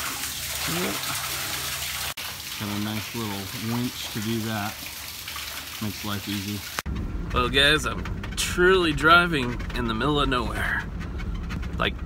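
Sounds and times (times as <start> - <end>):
water running and splashing: 0.0 - 6.9.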